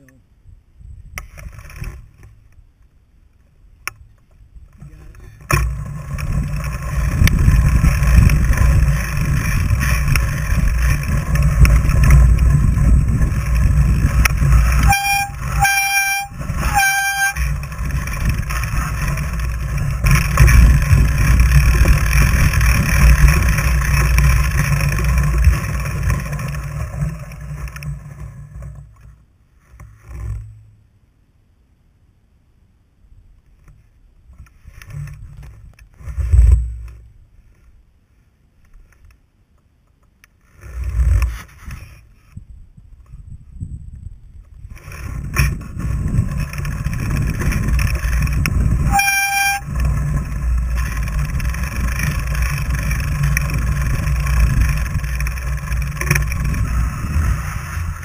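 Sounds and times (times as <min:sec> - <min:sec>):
bike tyres rumbling on snow: 0:04.0 - 0:30.8, 0:33.8 - 0:39.0, 0:40.4 - 0:58.0.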